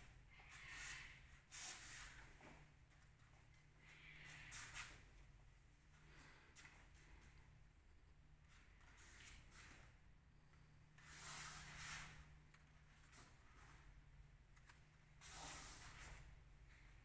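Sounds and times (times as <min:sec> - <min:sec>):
low steady hum: 0:02.2 - 0:17.0.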